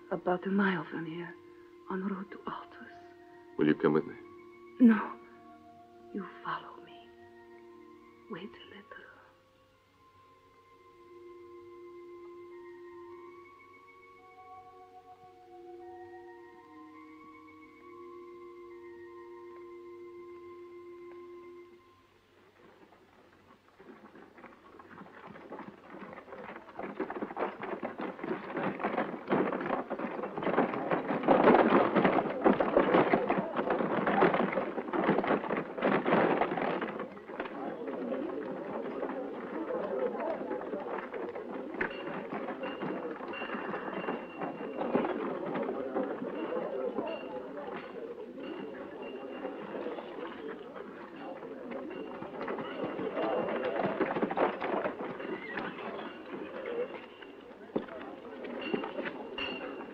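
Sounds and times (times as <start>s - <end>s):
hooves clopping: 0.0s - 59.9s
wagon wheels rolling: 0.0s - 59.9s
indistinct voices: 25.1s - 59.9s.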